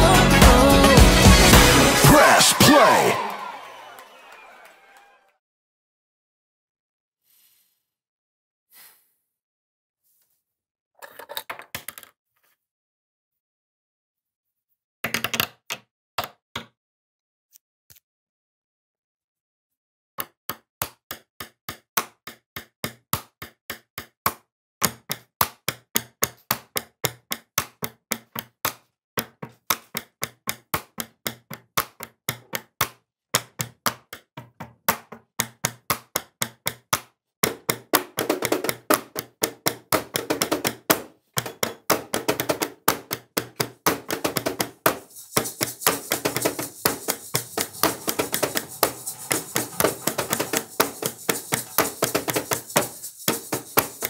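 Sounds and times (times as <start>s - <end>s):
denser layer of tapping: 37.4s - 54.0s
steady hiss: 44.9s - 54.0s.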